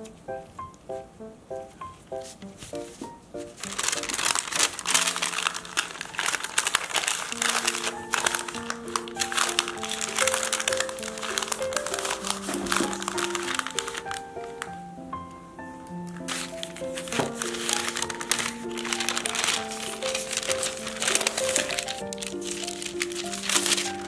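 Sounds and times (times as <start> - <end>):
light background music: 0.0 - 24.0
baking paper crinkling: 2.0 - 14.8, 16.1 - 24.0.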